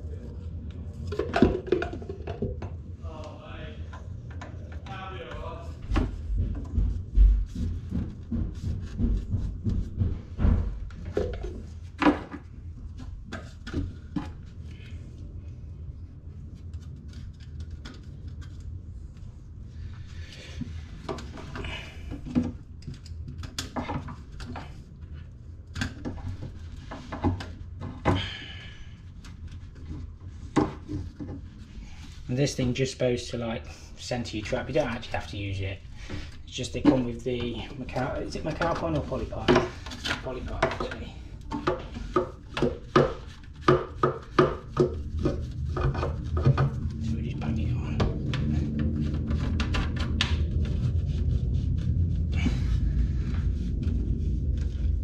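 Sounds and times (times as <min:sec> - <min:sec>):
low rumbling handling noise: 0:00.0 - 0:55.0
plastic parts knocking and clicking: 0:01.0 - 0:02.8, 0:05.9 - 0:14.5, 0:38.3 - 0:47.0.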